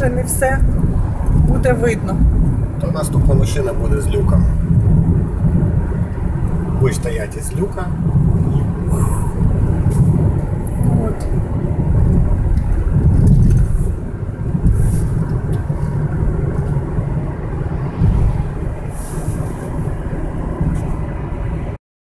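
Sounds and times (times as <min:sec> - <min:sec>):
car tyres and engine rumble: 0:00.0 - 0:21.8.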